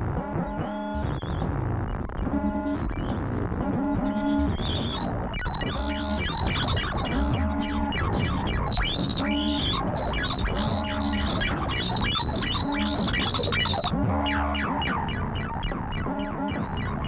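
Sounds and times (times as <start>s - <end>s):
falling electronic chirps: 4.2s - 17.0s
pitched synth tone: 4.2s - 17.0s.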